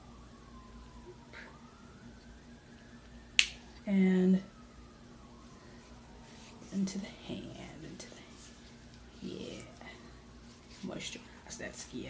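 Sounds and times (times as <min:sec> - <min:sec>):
woman speaking softly: 0:03.8 - 0:04.6, 0:06.6 - 0:08.5, 0:09.1 - 0:12.0.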